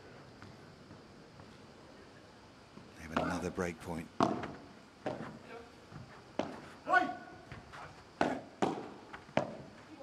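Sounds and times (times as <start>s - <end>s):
ball hit by rackets: 3.1s - 3.5s, 4.2s - 5.4s, 8.2s - 9.7s.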